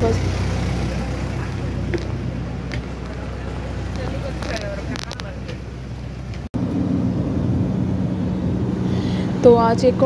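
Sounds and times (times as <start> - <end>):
car cabin road and engine noise: 0.0 - 10.0.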